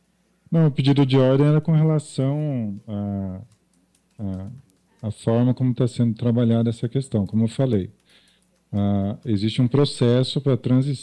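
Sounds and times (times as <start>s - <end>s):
man talking over video call: 0.5s - 3.5s, 4.2s - 8.0s, 8.7s - 11.0s
faint keyboard clicks: 2.6s - 10.2s.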